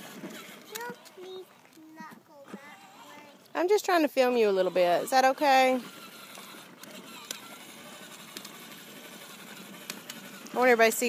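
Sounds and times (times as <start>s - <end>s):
electric motor and plastic wheels whirring: 0.0s - 11.0s.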